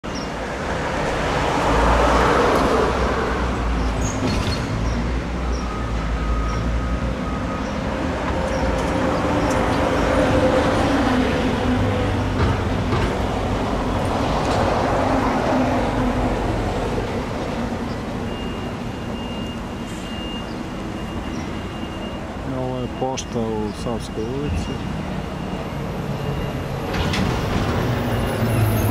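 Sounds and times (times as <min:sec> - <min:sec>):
road traffic passing: 0:00.0 - 0:28.9.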